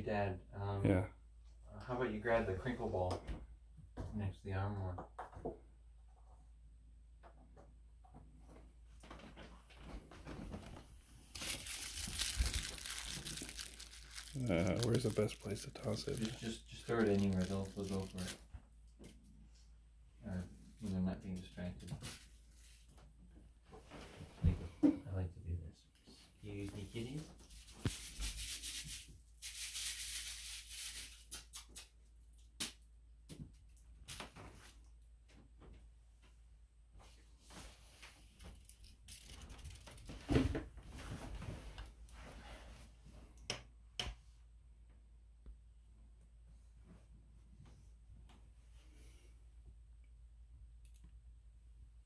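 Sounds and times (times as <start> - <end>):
crinkly rustling and scratching: 9.0 - 18.5, 37.5 - 42.7
foil ball crinkling: 11.3 - 18.4, 27.5 - 31.6, 38.5 - 40.1.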